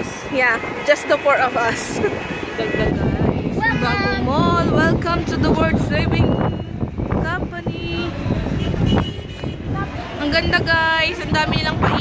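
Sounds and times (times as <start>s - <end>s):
low rumble of traffic: 0.0s - 12.0s
voices of people nearby: 0.0s - 12.0s
wind on microphone: 0.0s - 12.0s.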